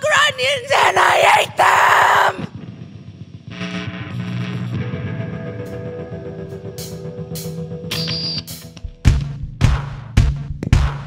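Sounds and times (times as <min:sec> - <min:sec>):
rock band playing live: 0:04.4 - 0:08.9.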